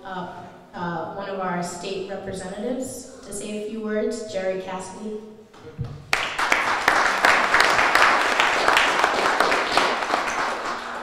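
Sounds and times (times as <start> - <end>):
audience applauding: 6.1 - 11.0.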